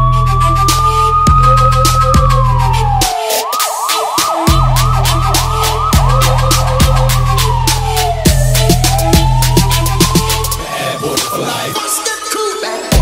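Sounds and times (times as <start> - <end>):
electronic music with heavy bass: 0.0 - 13.0
electronic police siren: 0.0 - 13.0.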